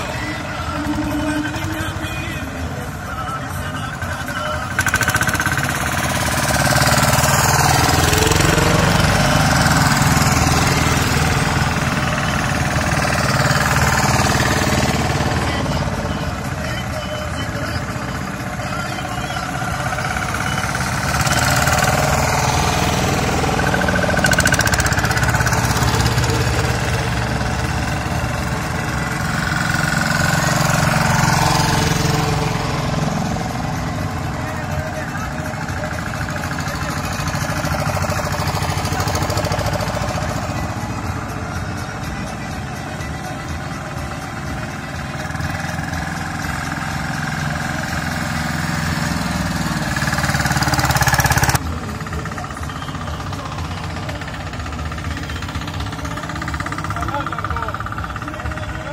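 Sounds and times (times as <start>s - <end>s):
small tractor engines chugging past: 0.0s - 58.9s.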